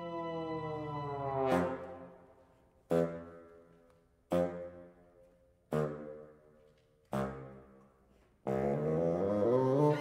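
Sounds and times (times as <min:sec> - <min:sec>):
chamber ensemble with bassoon: 0:08.5 - 0:10.0.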